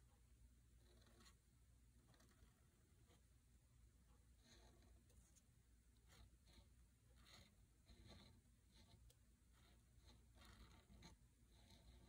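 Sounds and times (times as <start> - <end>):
pen scratching on paper: 0.7 - 3.4, 4.1 - 12.0.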